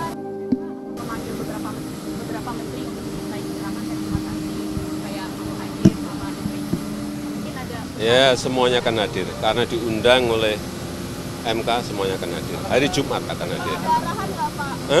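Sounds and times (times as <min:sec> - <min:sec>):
aircraft engine humming: 0:00.0 - 0:15.0.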